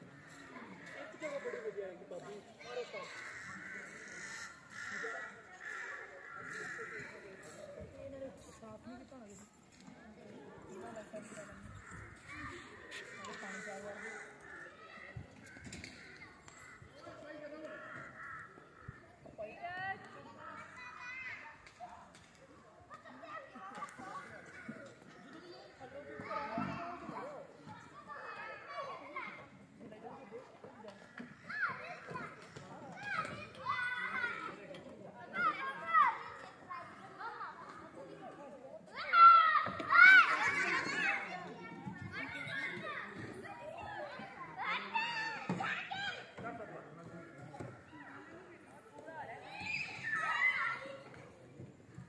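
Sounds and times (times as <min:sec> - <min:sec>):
distant people talking: 0:00.0 - 0:52.0
children calling out at play: 0:02.4 - 0:08.0, 0:11.1 - 0:46.6, 0:47.6 - 0:52.0.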